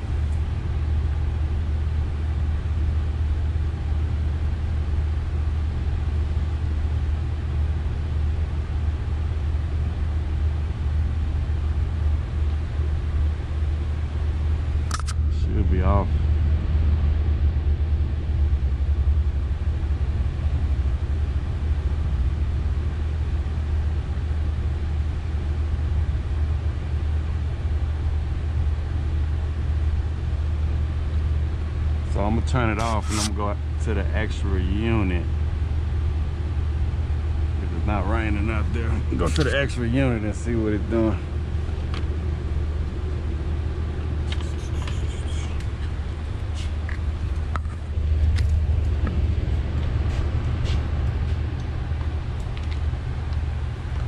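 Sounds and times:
hvac unit humming: 0.0s - 54.0s
person speaking: 32.2s - 33.5s, 37.7s - 41.2s, 44.3s - 45.8s.

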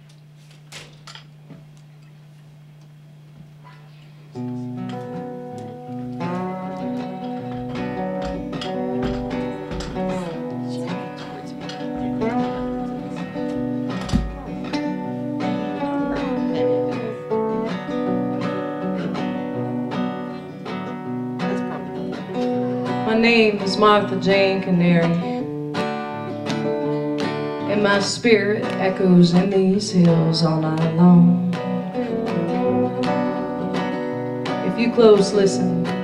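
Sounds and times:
acoustic guitars playing: 3.6s - 36.0s.

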